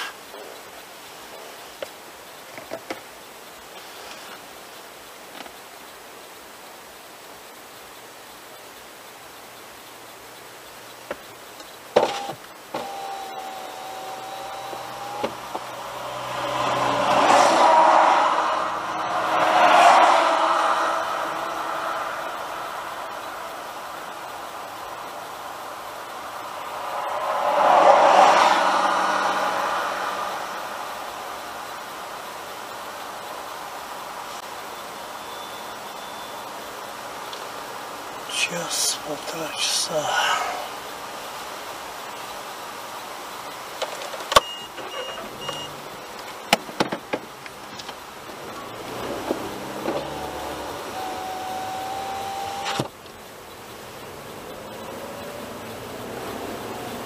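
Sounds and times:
car road and tyre noise: 0.0 - 57.0
passing traffic rushes: 12.1 - 57.0.

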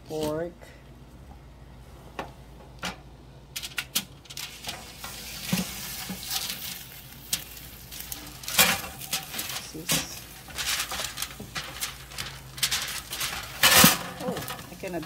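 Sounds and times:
foil crinkling: 3.6 - 15.0
meat sizzling on a tray: 4.4 - 15.0.

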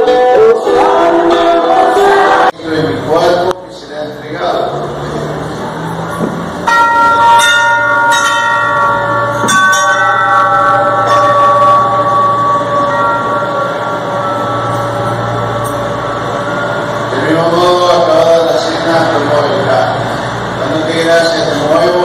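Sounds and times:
bell ringing: 5.8 - 22.0.

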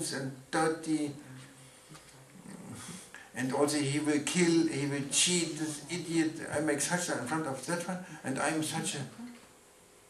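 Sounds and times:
man speaking into a microphone: 0.0 - 1.2, 2.6 - 9.2
faint low vocal murmur: 1.1 - 6.7.

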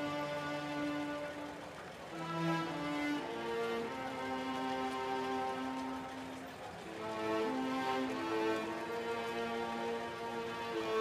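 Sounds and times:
slow sad bowed strings: 0.0 - 11.0.

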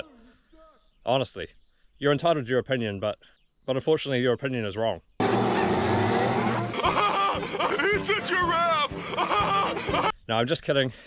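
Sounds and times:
loud noisy sound effect: 5.2 - 7.0
cartoon character voices: 6.6 - 10.1.

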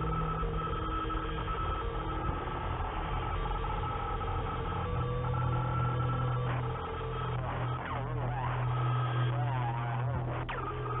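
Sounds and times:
electronic drone of held tones: 0.0 - 11.0.

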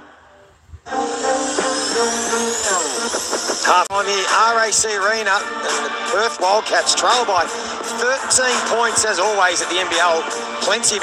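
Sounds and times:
high rising sweep: 0.8 - 4.4
broadcast bumper music: 0.9 - 11.0.

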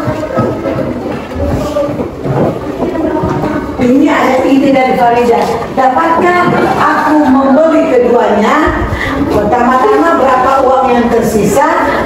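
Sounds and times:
indistinct voices: 0.0 - 12.0.

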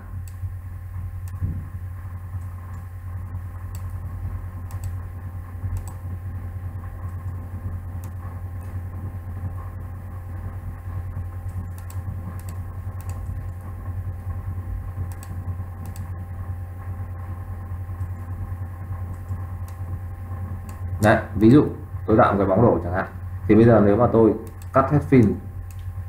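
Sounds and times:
low electrical hum: 0.0 - 26.0
computer mouse clicks: 0.2 - 0.4, 1.2 - 1.4, 2.4 - 2.9, 3.7 - 4.0, 4.6 - 5.0, 5.7 - 6.0, 8.0 - 8.8, 11.4 - 13.6, 15.1 - 16.1, 18.0 - 18.3, 19.1 - 19.8, 20.6 - 20.8, 24.4 - 25.9.

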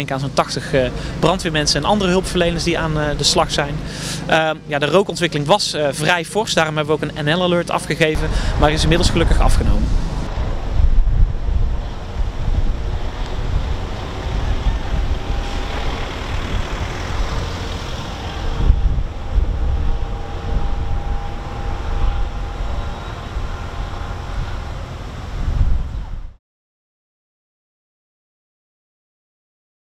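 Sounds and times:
faint steady hums: 0.0 - 26.1
low drone of engines: 0.0 - 26.4
wind rumbling on microphone: 0.8 - 4.0, 8.1 - 26.4.

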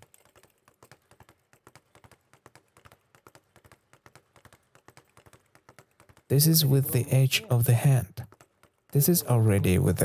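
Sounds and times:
speed bag rapid tapping: 0.0 - 7.2, 7.8 - 10.0.

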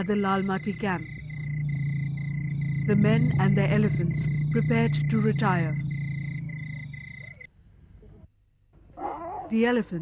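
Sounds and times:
high insect chirping: 0.0 - 7.5
low steady hum: 0.0 - 10.0.

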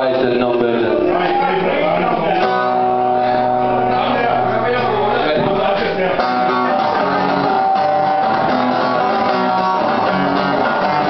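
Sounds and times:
acoustic guitar strumming: 0.2 - 11.0.

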